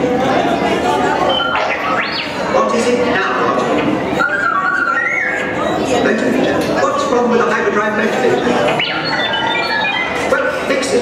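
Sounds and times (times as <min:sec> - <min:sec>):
crowd murmur: 0:00.0 - 0:11.0
robot electronic whistling: 0:01.1 - 0:02.6, 0:04.1 - 0:05.9, 0:08.3 - 0:11.0.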